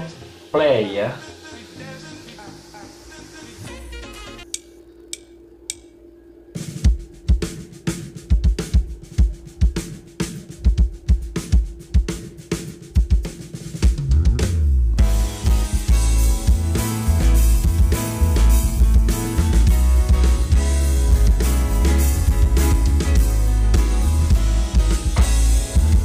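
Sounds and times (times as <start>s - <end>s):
drumsticks clicking together: 4.5s - 5.9s
drum kit groove: 6.6s - 26.0s
band with guitar bass and keys: 14.1s - 26.0s.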